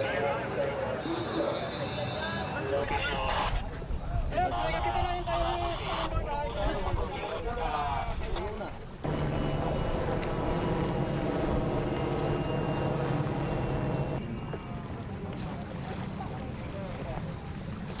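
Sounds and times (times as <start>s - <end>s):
boat and water noise: 0.0s - 18.0s
high turbine whine: 9.0s - 14.2s
helicopter rotor and engine drone: 9.0s - 14.6s.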